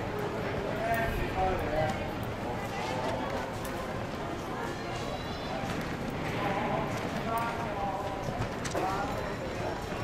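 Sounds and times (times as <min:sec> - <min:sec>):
outdoor bustle: 0:00.0 - 0:10.0.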